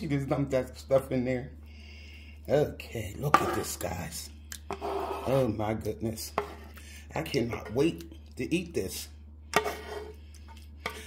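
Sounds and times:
steady low hum: 0.0s - 11.0s
spatula scraping a pot: 3.2s - 4.0s, 4.7s - 5.6s, 6.2s - 7.9s, 9.5s - 11.0s.

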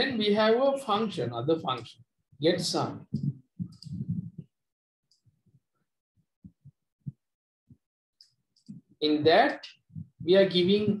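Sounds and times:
faint soft low thumps: 2.6s - 4.5s, 9.9s - 11.0s.

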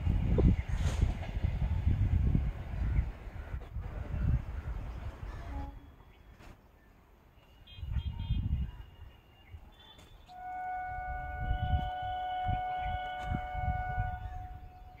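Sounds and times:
train horn: 5.3s - 6.0s, 10.3s - 15.0s.

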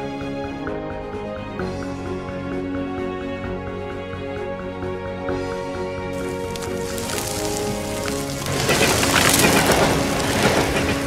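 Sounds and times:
soft background music: 0.0s - 11.0s
wood bonfire crackling: 6.2s - 11.0s.

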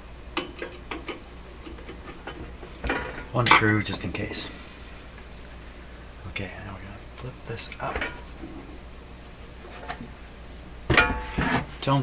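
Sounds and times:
metal clunk with rattle: 10.9s - 11.7s.

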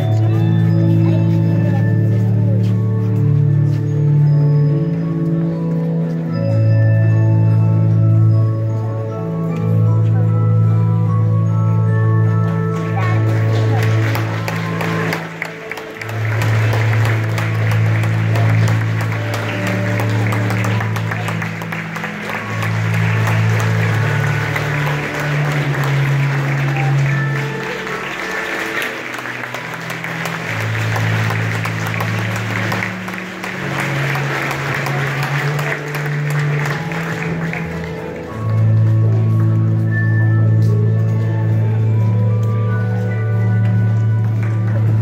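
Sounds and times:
music with long low notes: 0.0s - 45.0s
audience applause: 12.7s - 39.6s, 43.9s - 45.0s.

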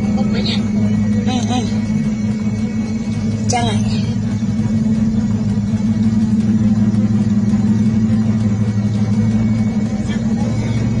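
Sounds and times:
road vehicle driving drone: 0.0s - 11.0s.

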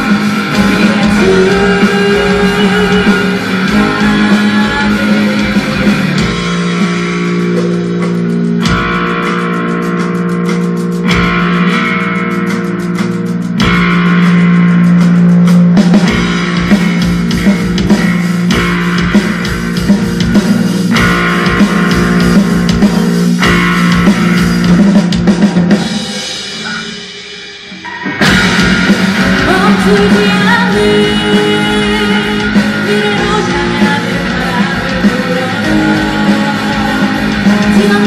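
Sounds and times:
rock band playing live: 0.0s - 38.0s.

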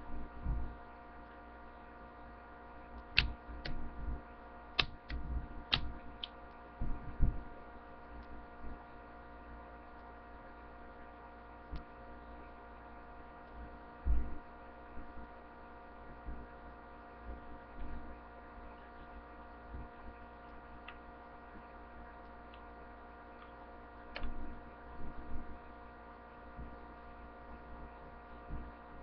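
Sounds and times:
electrical mains hum: 0.0s - 29.0s.

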